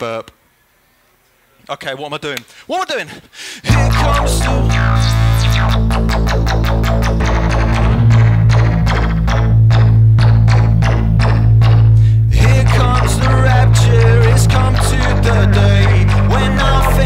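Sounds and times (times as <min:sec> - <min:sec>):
distorted synth bass drone: 0:03.7 - 0:17.0
sequenced percussive hits: 0:03.7 - 0:17.0.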